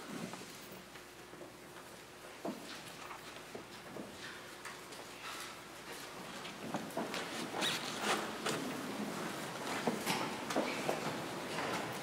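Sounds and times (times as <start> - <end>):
rustling and shuffling: 0.0 - 12.0.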